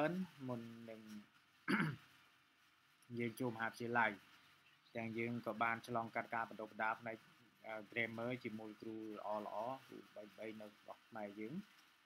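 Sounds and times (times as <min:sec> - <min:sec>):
man clearing his throat: 0:01.7 - 0:02.0.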